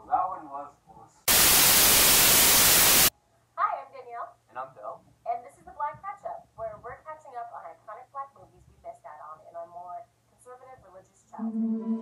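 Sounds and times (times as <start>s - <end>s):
tv static hiss: 1.3s - 3.1s.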